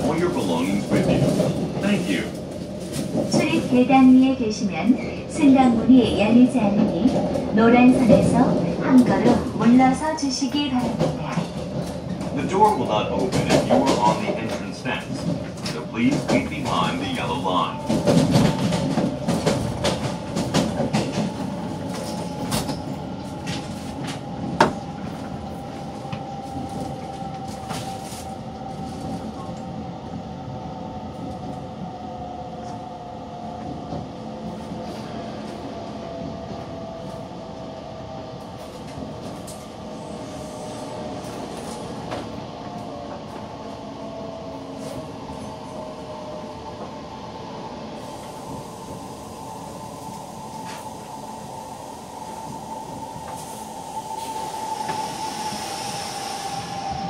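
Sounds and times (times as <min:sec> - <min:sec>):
train running noise: 0:00.0 - 0:57.0.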